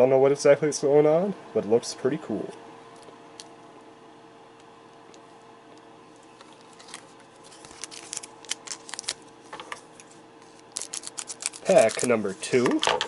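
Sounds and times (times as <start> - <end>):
faint steady hum: 0.0 - 13.0
foil pack crackling: 6.6 - 9.3, 10.4 - 12.6.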